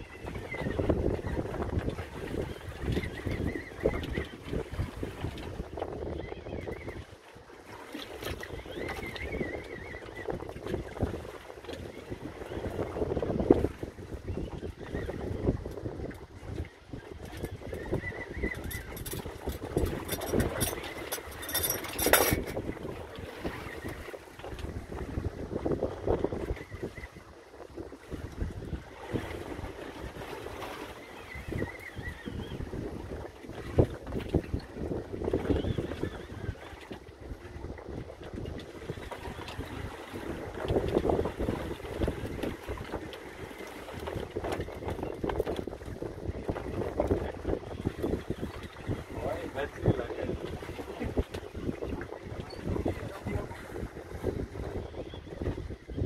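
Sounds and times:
boat and water noise: 0.0s - 56.0s
wind buffeting microphone: 0.0s - 56.0s.

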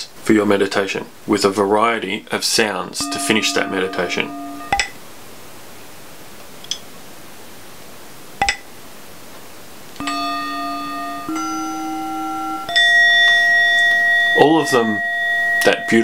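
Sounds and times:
singing bowl ringing: 3.0s - 5.0s, 10.0s - 16.0s.

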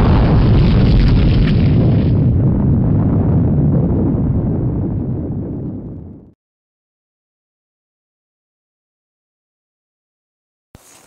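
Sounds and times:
loud deep explosion boom: 0.0s - 6.4s.

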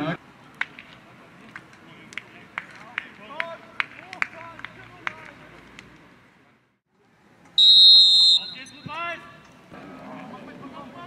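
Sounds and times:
referee's whistle blast: 7.6s - 9.0s.

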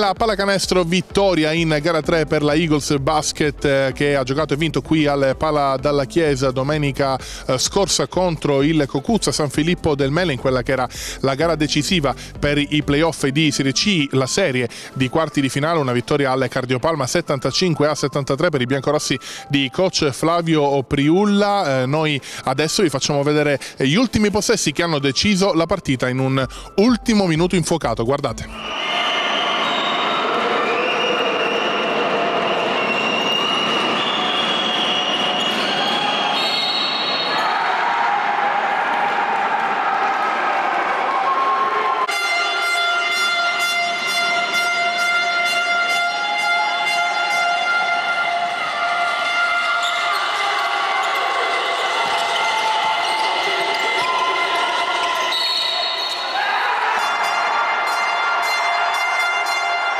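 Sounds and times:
horn-like tones: 41.9s - 59.9s
crowd din: 46.2s - 59.9s.

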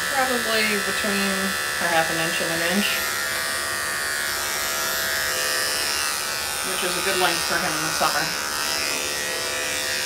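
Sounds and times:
electric clippers buzzing: 0.0s - 10.0s.

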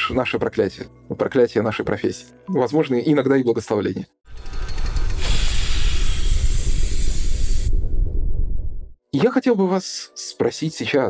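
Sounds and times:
loud hiss: 5.2s - 7.9s
deep steady rumble: 5.7s - 9.0s.

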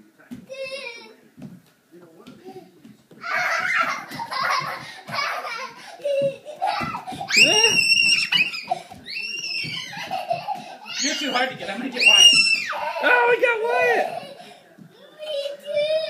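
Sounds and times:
children laughing: 3.2s - 16.0s
children squealing: 6.8s - 14.2s.

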